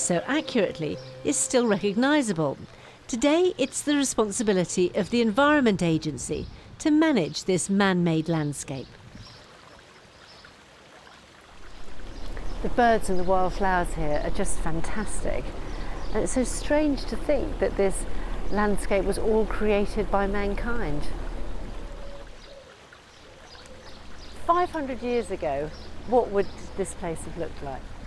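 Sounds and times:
water trickling: 8.7 - 28.0.

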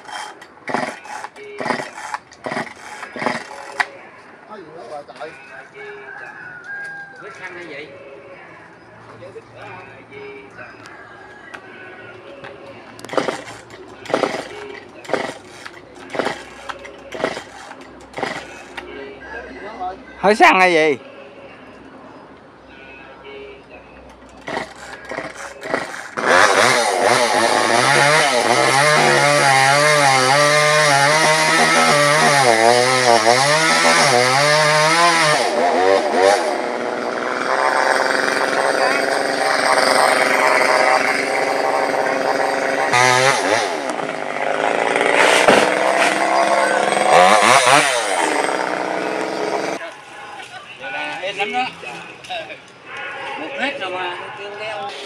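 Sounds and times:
chainsaw cutting through trunk: 0.0 - 3.9, 13.1 - 18.8, 24.4 - 49.8.

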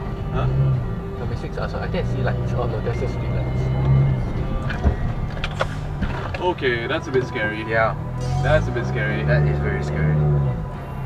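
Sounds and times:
background music: 0.0 - 11.0
car engine and road noise: 0.0 - 11.0.

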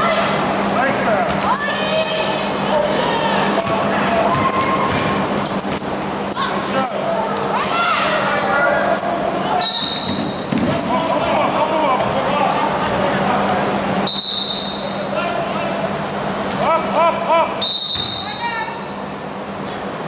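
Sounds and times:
sneakers squeaking: 0.9 - 2.6, 3.5 - 7.5, 8.9 - 11.4, 12.0 - 15.1, 15.7 - 16.6, 17.7 - 19.0
people calling out: 1.1 - 12.0, 16.1 - 18.9
basketball bouncing: 3.6 - 5.9.

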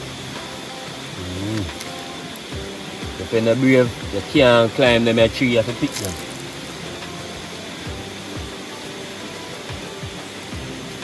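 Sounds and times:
food sizzling in hot oil: 0.0 - 11.0.

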